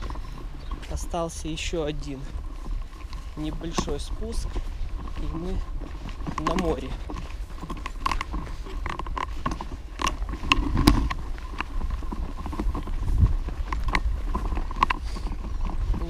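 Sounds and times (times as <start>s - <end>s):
stroller rattling and creaking: 0.0s - 16.0s.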